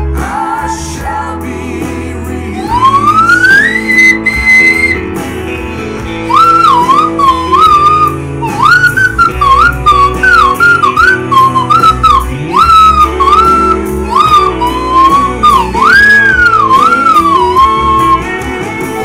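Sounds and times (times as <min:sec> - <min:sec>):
backing music: 0:00.0 - 0:19.0
slide whistle: 0:02.6 - 0:05.2, 0:06.2 - 0:18.5.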